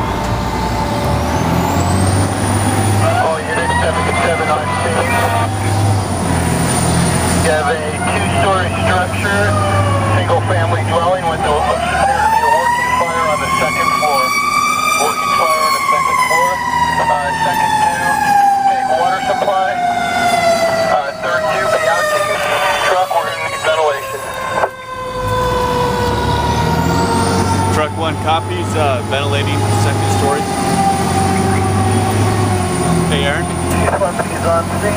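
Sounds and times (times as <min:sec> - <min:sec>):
fire truck siren winding: 0:00.0 - 0:34.0.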